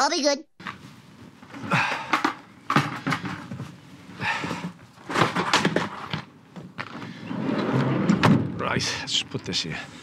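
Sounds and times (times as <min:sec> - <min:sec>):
equipment knocking and clattering: 0:01.8 - 0:03.7, 0:04.6 - 0:06.9.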